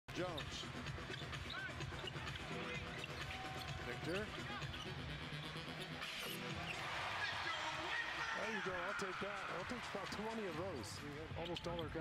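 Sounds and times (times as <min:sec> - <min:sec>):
sneakers squeaking: 0:00.3 - 0:07.5, 0:11.2 - 0:12.0
arena crowd noise: 0:06.4 - 0:12.0.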